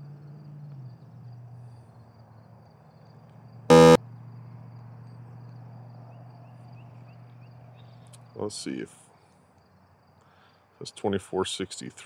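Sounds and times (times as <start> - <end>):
short electronic beep: 3.7 - 4.0
steady low hum: 3.7 - 4.0.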